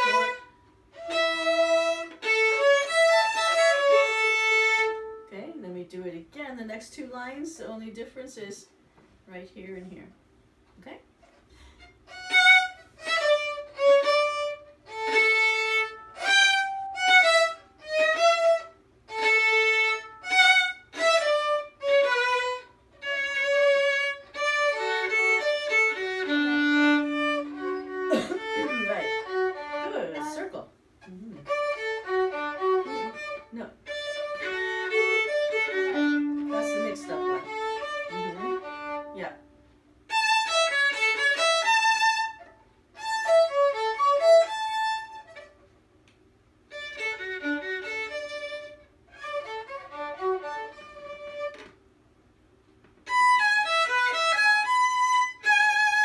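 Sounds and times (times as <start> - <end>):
violin duet: 0.0 - 5.9, 11.3 - 45.7, 46.7 - 51.8, 53.0 - 56.0.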